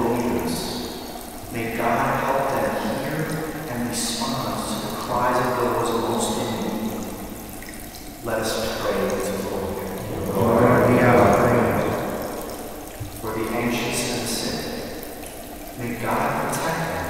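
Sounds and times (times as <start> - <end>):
man speaking in echoing church: 0.0 - 7.2, 8.2 - 15.0, 15.7 - 17.0.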